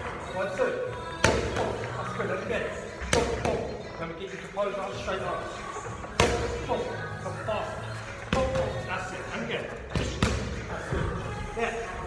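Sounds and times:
boxing gloves hitting focus mitts: 1.2s - 1.9s.

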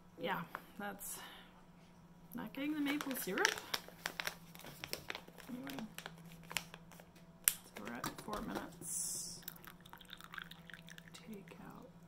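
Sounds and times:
paper filter crinkling: 2.8s - 8.0s.

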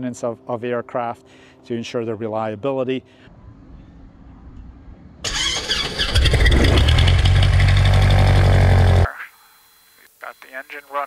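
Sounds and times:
engine starter cranking: 5.2s - 9.0s
propeller plane engine running: 6.1s - 9.1s.

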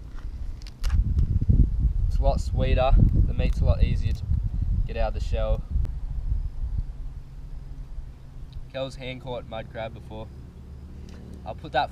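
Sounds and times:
wind rumbling on microphone: 0.0s - 10.3s.

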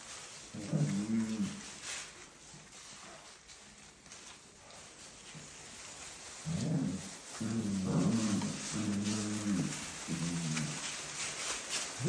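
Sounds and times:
paper bedding rustling: 0.0s - 12.0s
puppies growling: 0.5s - 1.7s, 6.3s - 12.0s.

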